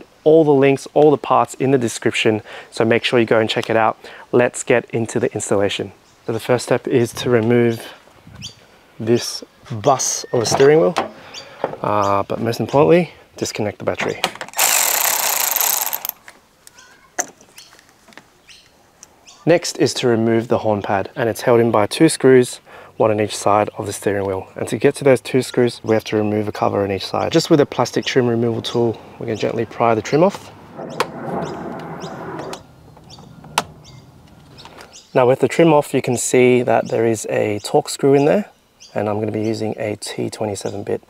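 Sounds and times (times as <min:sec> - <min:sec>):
electric ratchet running: 0:14.5 - 0:16.2.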